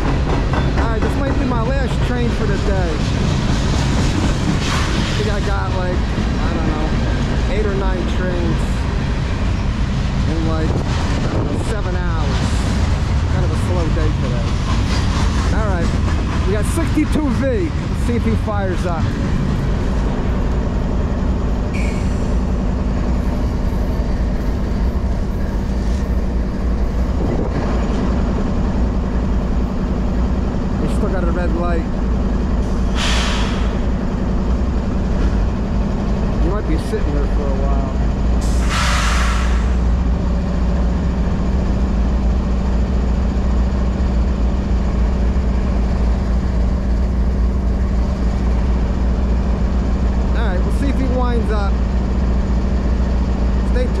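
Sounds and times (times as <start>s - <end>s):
diesel locomotive engine hum: 0.0s - 54.0s
brake air hissing: 32.6s - 33.8s, 38.4s - 39.8s.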